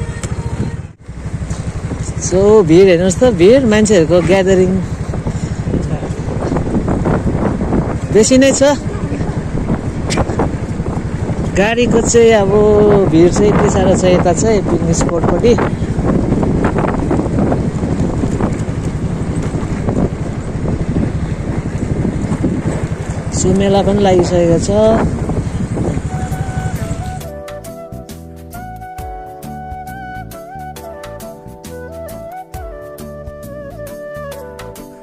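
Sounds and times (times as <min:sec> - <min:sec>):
scooter running: 0:00.0 - 0:27.3
wind buffeting microphone: 0:00.0 - 0:27.9
road noise: 0:00.0 - 0:35.0
flute music: 0:25.9 - 0:35.0.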